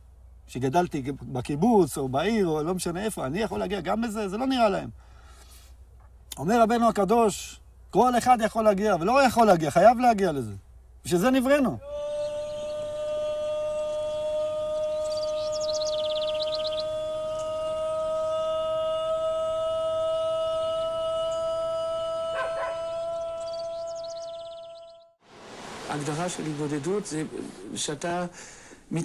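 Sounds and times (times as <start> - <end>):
high bird chirps: 14.8 - 17.6, 22.4 - 25.2.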